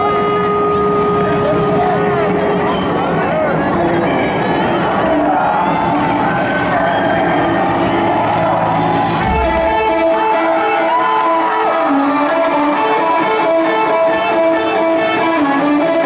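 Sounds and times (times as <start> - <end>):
electric guitar riff: 0.0 - 5.1, 6.7 - 16.0
crowd cheering and whistling: 0.0 - 15.9.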